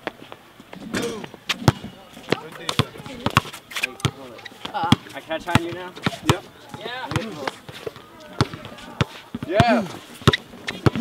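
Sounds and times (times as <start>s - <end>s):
basketball bouncing on hard court: 1.6s - 7.4s, 9.4s - 11.0s.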